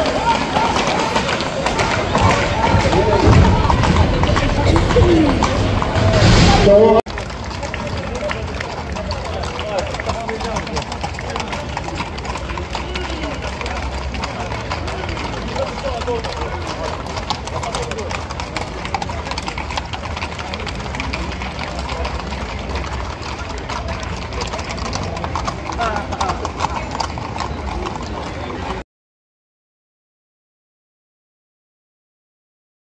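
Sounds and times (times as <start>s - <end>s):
horse hooves on pavement: 0.0s - 6.2s, 7.1s - 28.8s
people talking: 0.0s - 28.8s.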